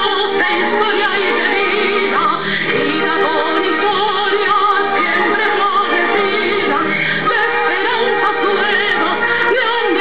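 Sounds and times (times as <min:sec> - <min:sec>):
symphony orchestra playing: 0:00.0 - 0:10.0.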